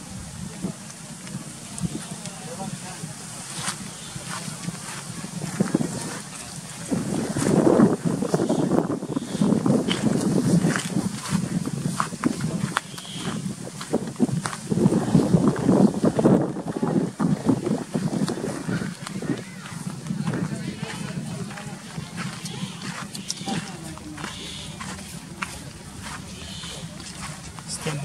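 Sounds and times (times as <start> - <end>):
indistinct voices talking: 0.0 - 28.0
outdoor background noise: 0.0 - 28.0.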